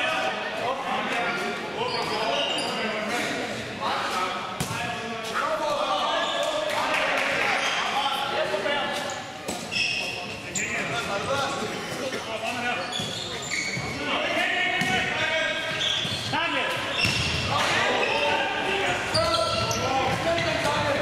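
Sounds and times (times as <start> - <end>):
shoes squeaking: 8.8 - 14.3, 15.6 - 21.0.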